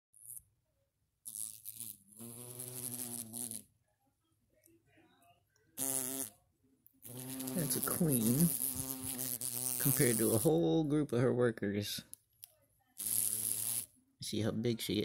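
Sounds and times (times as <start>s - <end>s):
wasps buzzing: 1.3s - 3.7s, 5.8s - 6.3s, 7.0s - 10.6s, 13.0s - 13.9s.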